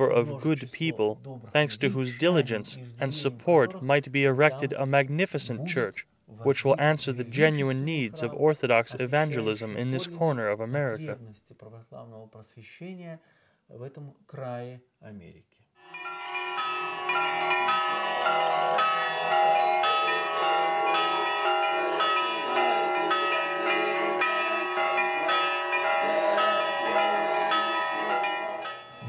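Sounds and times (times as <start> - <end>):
church bells pealing: 15.8 - 29.0.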